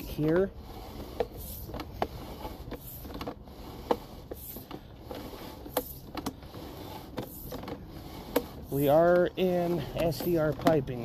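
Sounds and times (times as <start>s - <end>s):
cable reel rumble: 0.0s - 11.0s.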